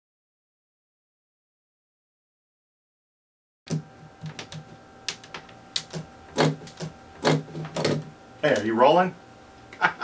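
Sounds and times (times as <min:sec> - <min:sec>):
faint steady hum: 0:03.7 - 0:10.0.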